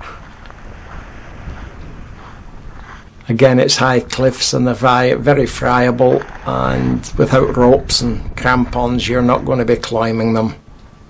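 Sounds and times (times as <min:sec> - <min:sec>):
sea hissing on beach: 0:00.0 - 0:03.2
wind buffeting microphone: 0:00.0 - 0:11.0.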